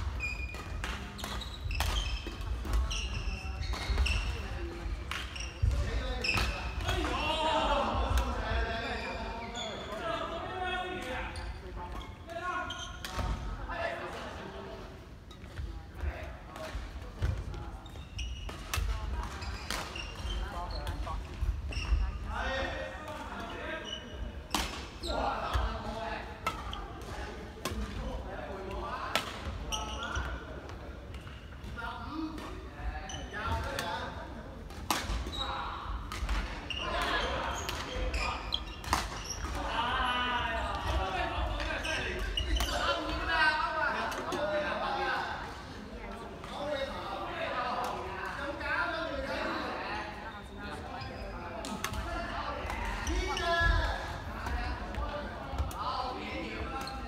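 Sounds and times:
rackets hitting shuttlecock: 0.4 - 4.3.

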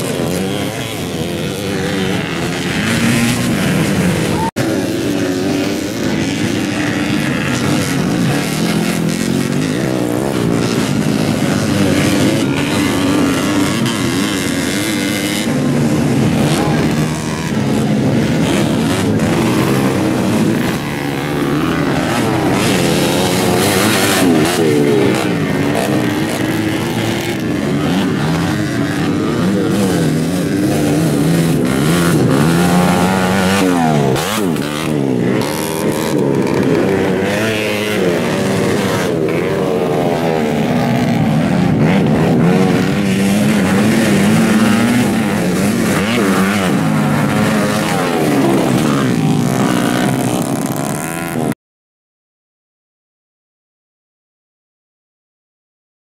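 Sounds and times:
motocross bikes revving: 0.0 - 51.6.

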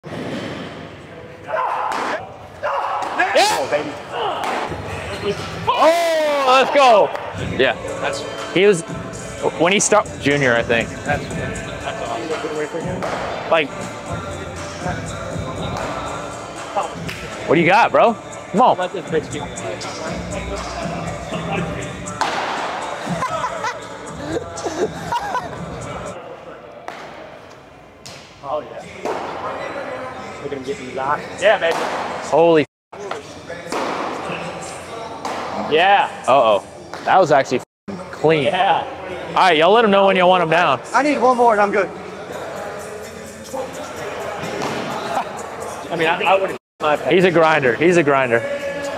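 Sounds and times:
background music: 2.7 - 26.4, 28.1 - 48.9
men calling out: 22.8 - 26.2.

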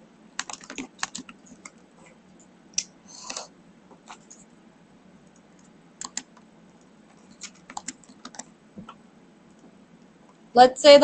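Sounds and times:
computer keyboard typing: 0.4 - 1.8, 5.2 - 8.5.

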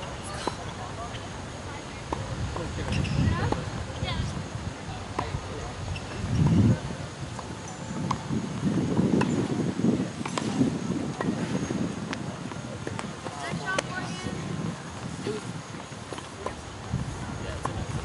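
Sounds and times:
tennis balls struck and bouncing: 2.0 - 3.8, 5.0 - 6.6, 7.3 - 16.6, 17.5 - 18.0.

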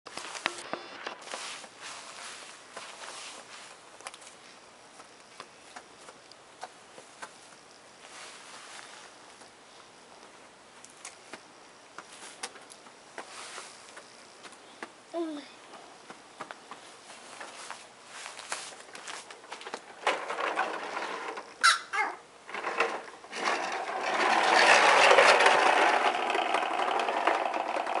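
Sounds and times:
footsteps on concrete: 0.1 - 8.1, 11.3 - 15.0, 15.7 - 19.9
faint outdoor hiss: 0.1 - 28.0
toy lawn mower rattling: 19.5 - 28.0.

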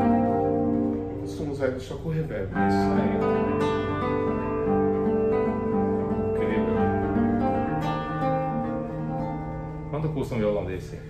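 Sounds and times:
classical guitar chords and notes: 0.0 - 11.0.

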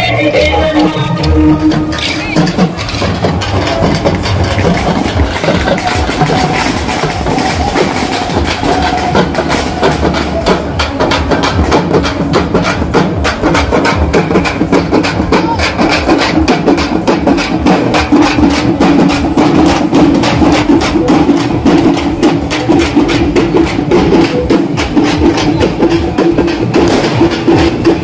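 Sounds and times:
hand drums played fast: 0.0 - 28.0.

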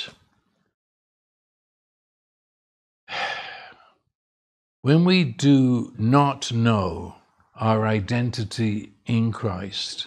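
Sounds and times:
man inhaling sharply: 3.1 - 4.0
man speaking: 4.8 - 10.0.

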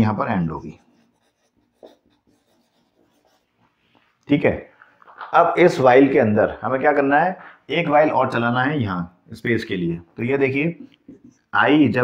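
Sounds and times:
marker pen on whiteboard: 0.0 - 4.1, 10.7 - 11.7.

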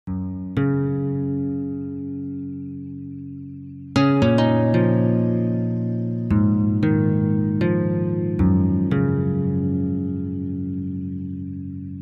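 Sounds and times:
plucked guitar notes ringing: 0.1 - 12.0.

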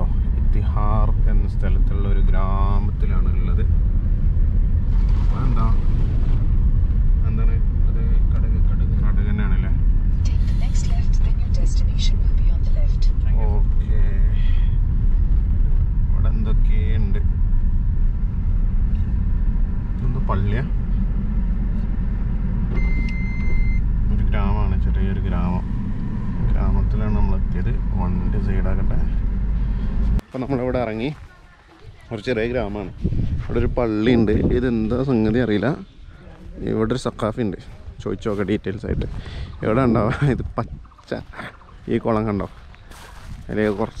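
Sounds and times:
car rumbling on rough road: 0.0 - 30.3
brief high beep: 22.7 - 23.8.

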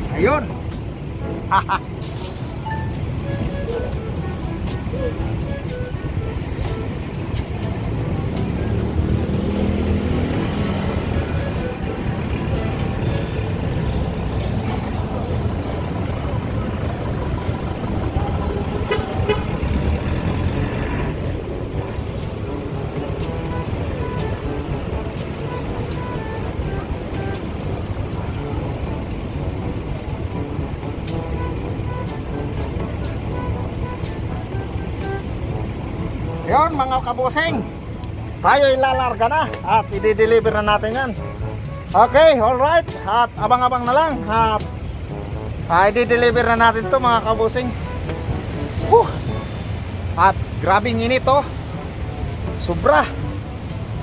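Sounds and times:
street traffic: 0.0 - 54.0
car horn tooting: 18.4 - 19.8, 21.3 - 29.1, 31.1 - 35.4, 38.9 - 45.0, 46.4 - 49.8.

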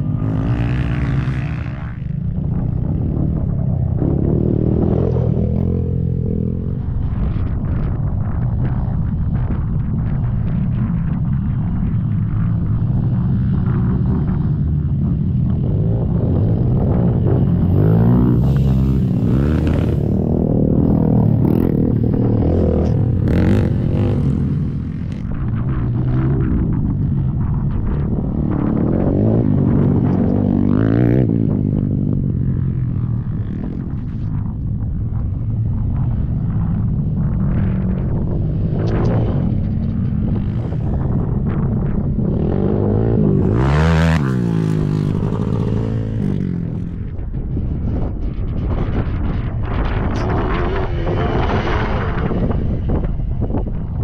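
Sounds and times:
quad engines revving: 0.0 - 2.4, 15.6 - 26.6, 42.2 - 47.0.

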